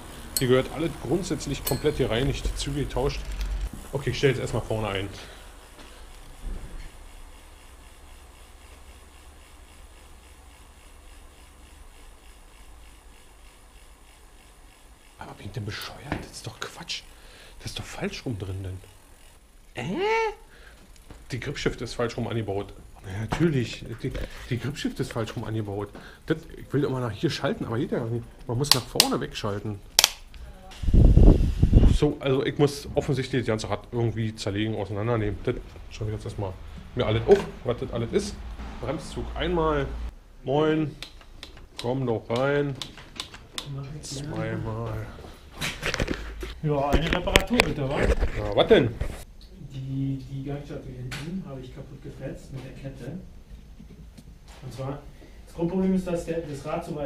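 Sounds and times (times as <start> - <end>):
low rumble with rubbing: 0.0 - 16.8
sharp click: 30.0 - 30.3.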